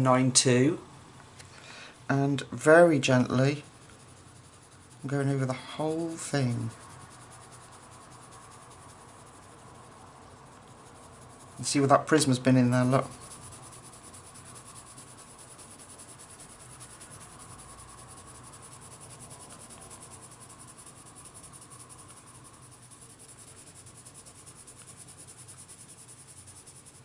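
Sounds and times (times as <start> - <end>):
pencil scratching on paper: 2.7 - 27.0.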